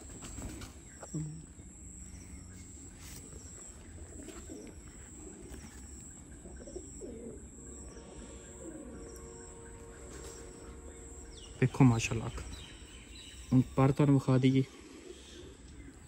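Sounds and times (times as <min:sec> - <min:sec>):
pigeons cooing: 0:00.0 - 0:11.6, 0:12.4 - 0:16.0.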